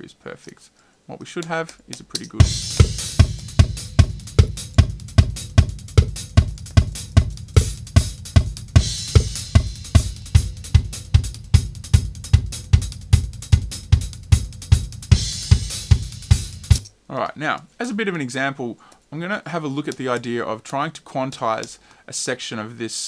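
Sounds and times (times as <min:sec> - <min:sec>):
drum kit groove: 0:01.6 - 0:16.9
cymbal crashes: 0:02.4 - 0:11.0.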